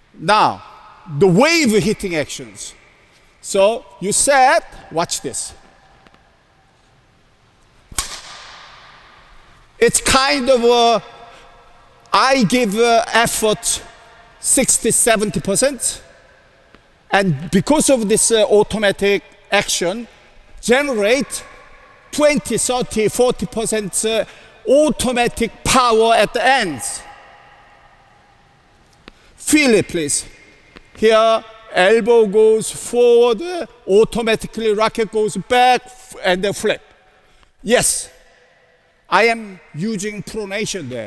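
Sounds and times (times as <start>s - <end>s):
echoing voice: 0.0s - 6.8s, 8.0s - 41.0s
low steady hiss: 0.0s - 41.0s
racket striking shuttlecock: 7.9s - 9.0s.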